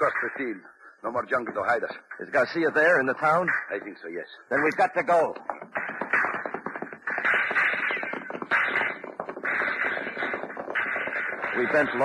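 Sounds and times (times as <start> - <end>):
horses galloping hoofbeats: 4.6 - 12.0.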